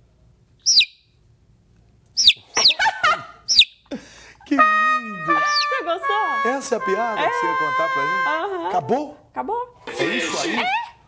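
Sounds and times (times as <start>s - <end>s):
bird chirping: 0.6s - 1.2s, 2.1s - 3.9s, 5.0s - 5.9s.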